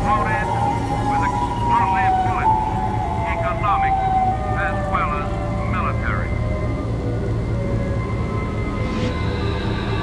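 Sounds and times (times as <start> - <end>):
steady low drone: 0.0 - 10.0
wavering synth tone: 6.3 - 10.0.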